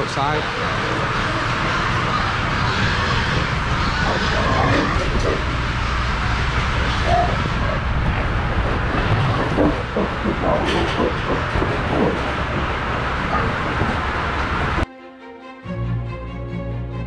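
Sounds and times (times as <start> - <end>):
ventilation fans droning: 0.0 - 14.9
pigs grunting and squealing: 0.4 - 12.4.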